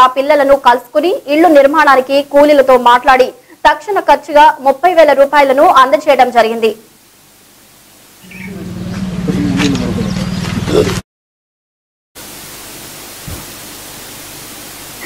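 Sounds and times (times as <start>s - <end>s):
low electrical hum: 0.0s - 11.0s, 12.2s - 15.0s
faint voices: 8.4s - 11.0s
even hiss: 12.2s - 15.0s.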